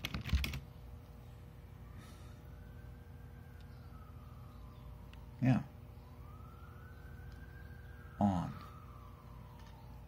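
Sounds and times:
faint siren wailing: 1.5s - 10.0s.

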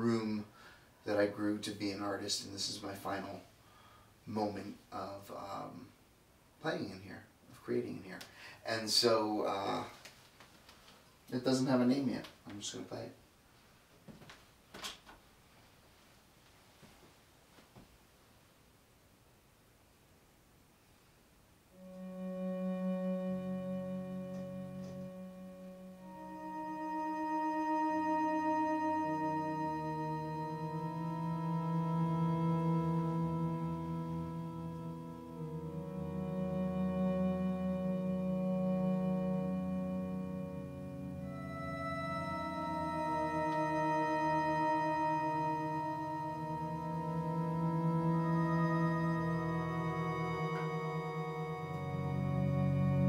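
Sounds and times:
theremin tones: 21.8s - 53.0s.

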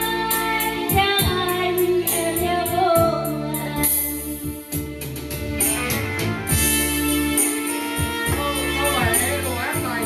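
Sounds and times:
guitar-led instrumental music: 0.0s - 10.0s.

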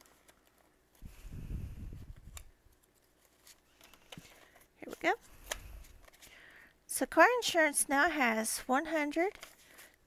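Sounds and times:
paper banknotes being handled: 2.7s - 6.4s, 8.9s - 10.0s.

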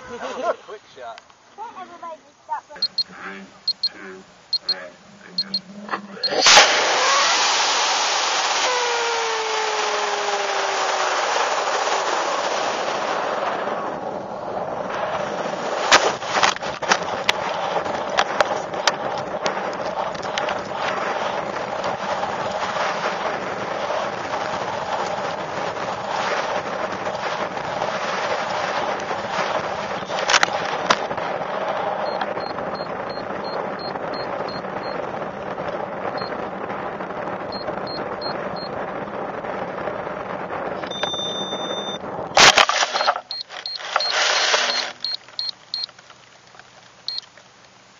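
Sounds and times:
scattered clicks: 2.8s - 7.2s, 15.9s - 22.6s, 28.4s - 31.2s, 32.0s - 36.4s, 40.8s - 47.8s
sharp burst: 2.8s - 31.7s, 41.4s - 45.5s
wind rush with falling whistle: 4.5s - 45.5s
rocket motor igniting blast: 5.7s - 35.3s, 38.8s - 45.9s.

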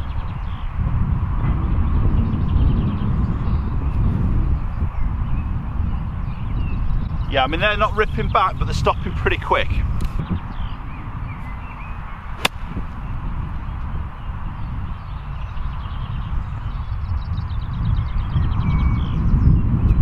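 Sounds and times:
wind rumble on microphone: 0.0s - 20.0s
golf club striking ball: 12.4s - 13.1s.

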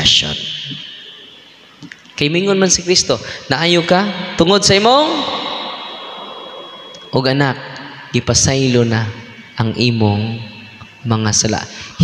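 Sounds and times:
faint high-pitched tone: 0.0s - 12.0s
man's voice echoing in hall: 0.0s - 12.0s.

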